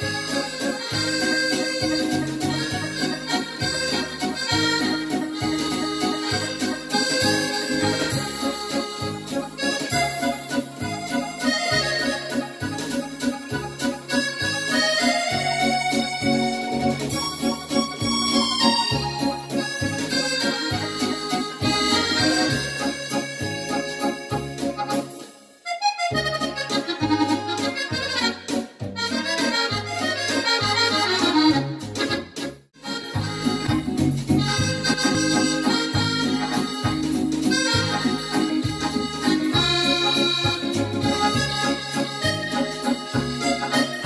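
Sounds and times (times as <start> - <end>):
bouncing bass accompaniment: 0.0 - 25.3, 25.9 - 44.0
keyboard accordion musette melody: 0.0 - 44.0.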